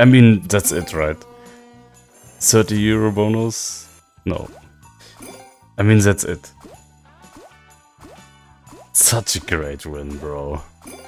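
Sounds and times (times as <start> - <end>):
slot machine music: 0.0 - 11.0.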